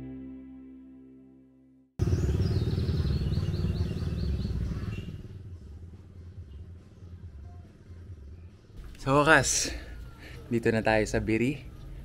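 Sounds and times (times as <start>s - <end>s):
small motorcycle passing: 2.0s - 6.3s.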